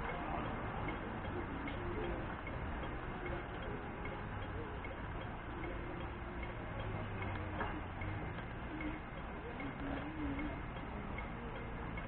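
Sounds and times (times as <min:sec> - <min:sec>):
crossing signal ticking: 0:00.0 - 0:12.0
traffic noise: 0:00.0 - 0:12.0.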